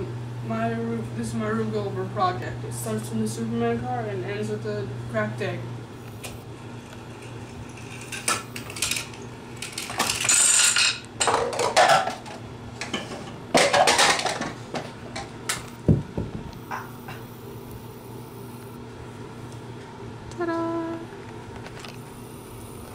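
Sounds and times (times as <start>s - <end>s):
dominoes and cups clattering: 7.8s - 12.1s.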